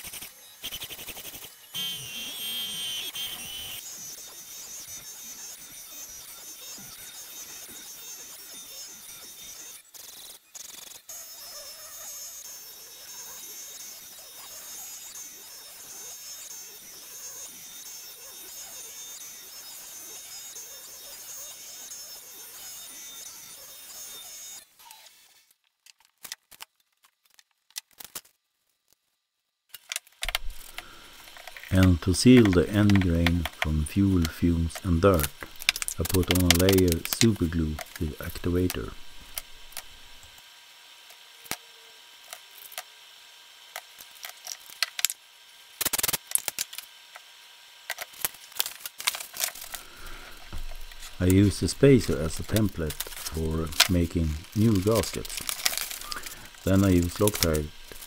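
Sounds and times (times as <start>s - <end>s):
router spindle whining: 0.0s - 25.5s, 29.8s - 58.0s.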